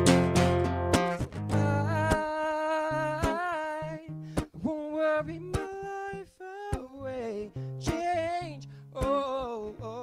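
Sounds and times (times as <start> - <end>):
acoustic guitar strums: 0.0 - 10.0.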